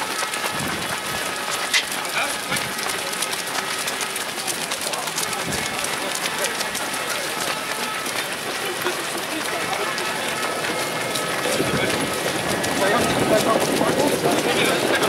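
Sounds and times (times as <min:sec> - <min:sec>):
indistinct voices: 0:00.0 - 0:15.0
runners' footsteps on wet asphalt: 0:00.0 - 0:15.0.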